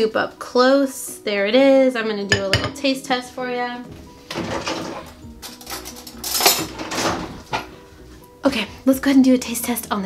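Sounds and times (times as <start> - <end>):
metal cutlery clattering in drawer: 4.4 - 7.4.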